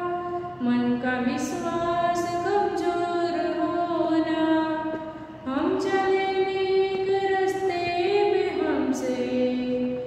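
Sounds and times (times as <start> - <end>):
woman singing unaccompanied: 0.0 - 10.0.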